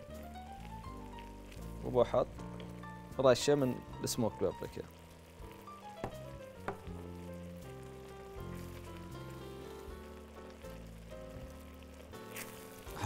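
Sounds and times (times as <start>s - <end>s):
rice sizzling in a pan: 0.0s - 13.0s
soft background music: 0.0s - 13.0s.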